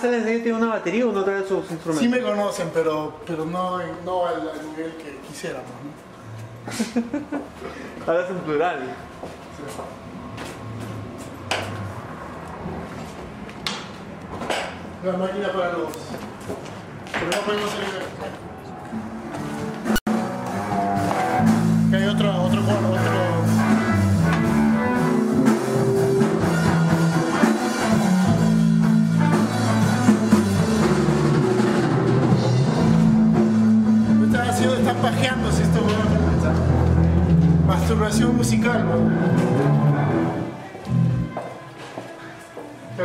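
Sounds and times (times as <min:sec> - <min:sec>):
drum kit: 0:19.4 - 0:41.4
rock band jamming: 0:19.4 - 0:41.4.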